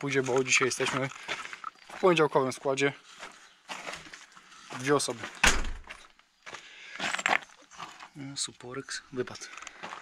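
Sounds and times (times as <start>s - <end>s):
door slamming shut: 5.4s - 5.9s.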